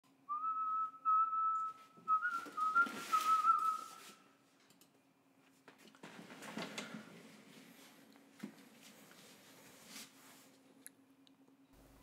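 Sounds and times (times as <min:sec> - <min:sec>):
high whistle: 0:00.3 - 0:04.2.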